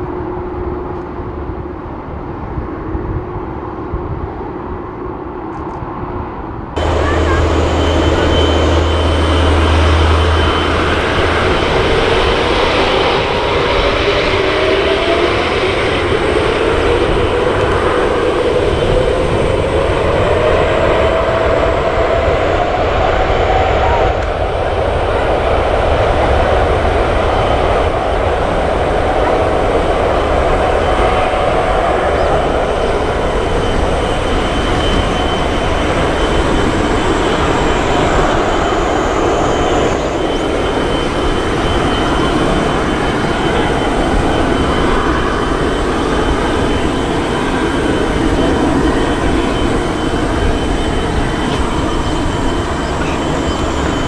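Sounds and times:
jet engines spooling up: 0:06.8 - 0:54.0.

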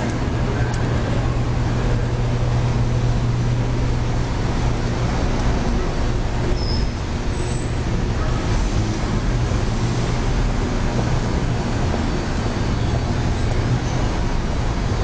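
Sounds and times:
low hum: 0:00.0 - 0:14.9
traffic rumble: 0:00.0 - 0:15.0.

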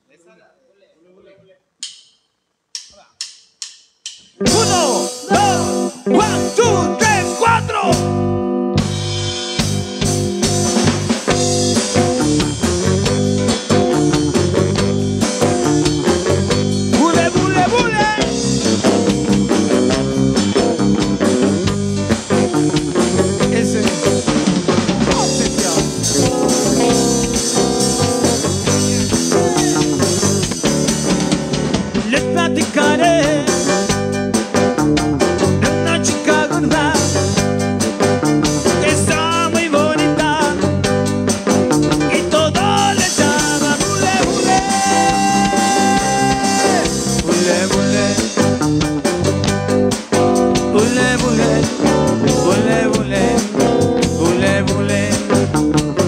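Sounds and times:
person counting in: 0:02.8 - 0:03.3, 0:04.4 - 0:08.2, 0:25.1 - 0:27.3, 0:42.2 - 0:46.9
live rock and roll band: 0:04.3 - 0:56.0.

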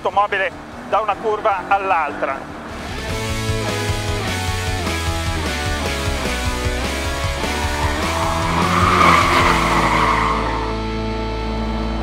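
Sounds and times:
background music: 0:02.5 - 0:12.0
tyres squealing: 0:06.5 - 0:10.8.

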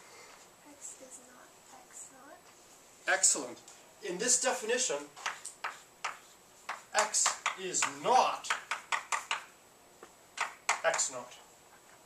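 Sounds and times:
chalk tapping on blackboard: 0:05.2 - 0:09.5, 0:10.4 - 0:11.2.

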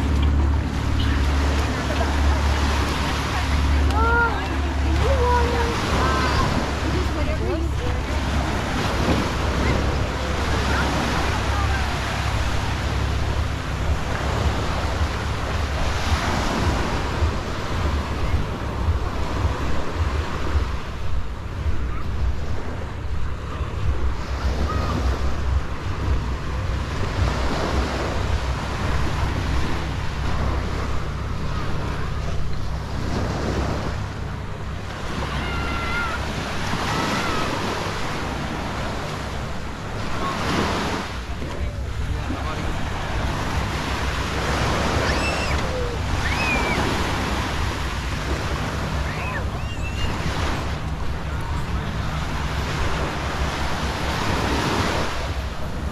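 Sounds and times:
surf washing up on sand: 0:00.0 - 0:55.9
wind buffeting microphone: 0:00.0 - 0:55.9.

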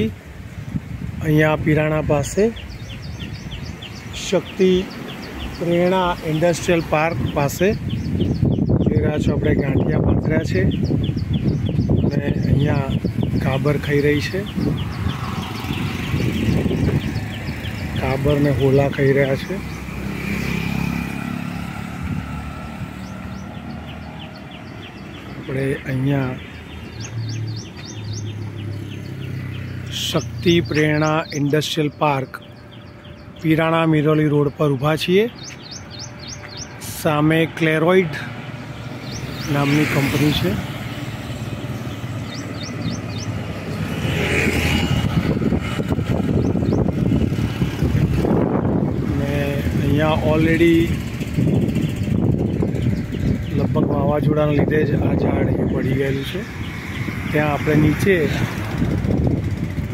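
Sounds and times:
bird chirps: 0:02.5 - 0:21.9, 0:22.6 - 0:48.1, 0:49.0 - 0:58.6
motorcycle engine passing: 0:14.0 - 0:25.4, 0:26.3 - 0:30.7, 0:38.4 - 0:54.1, 0:54.7 - 0:59.9.

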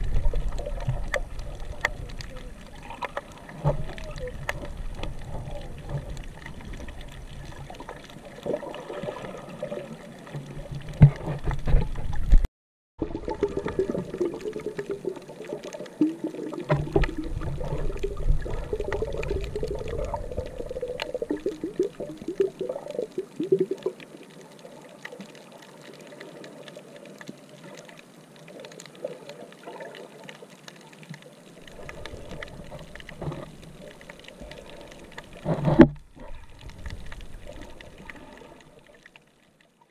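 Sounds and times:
clicks underwater: 0:00.0 - 0:24.4, 0:28.6 - 0:39.2
underwater sloshing and bubbling: 0:00.0 - 0:39.9.

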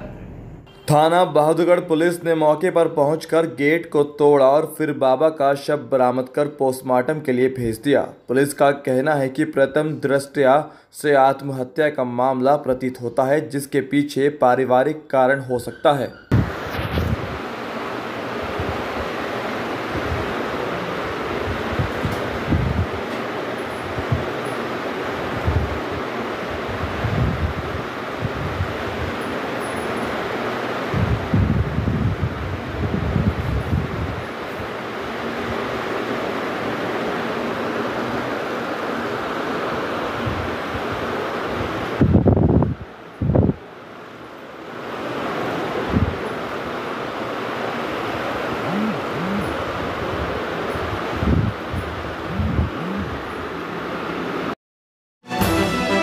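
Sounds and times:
wind on microphone: 0:16.3 - 0:17.4, 0:21.3 - 0:23.0, 0:23.8 - 0:24.3, 0:25.2 - 0:29.2, 0:30.9 - 0:34.3, 0:40.2 - 0:43.6, 0:45.8 - 0:46.2, 0:48.5 - 0:53.4.

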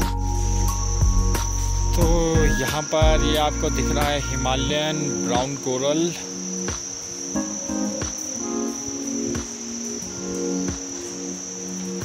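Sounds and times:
insect chorus: 0:00.0 - 0:12.0
soft background music chords: 0:00.0 - 0:12.0.

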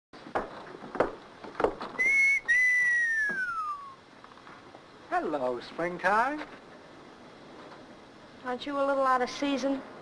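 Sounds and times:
man whistling: 0:02.0 - 0:04.0.

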